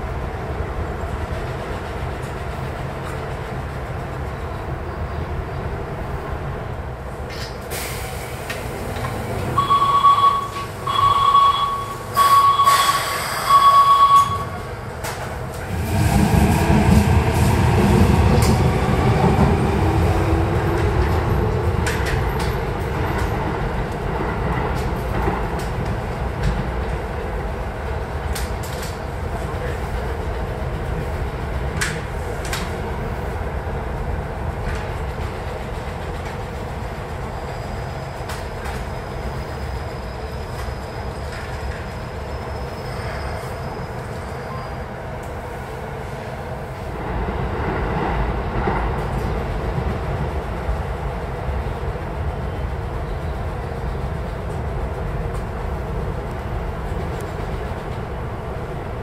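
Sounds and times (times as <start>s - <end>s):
steady train rumble: 0.0s - 59.0s
one-note signal blasts: 9.6s - 14.6s.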